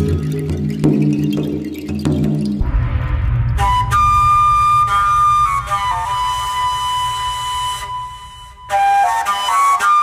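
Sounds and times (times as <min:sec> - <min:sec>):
low drone: 0:02.6 - 0:08.7
flute holding long note: 0:03.6 - 0:10.0.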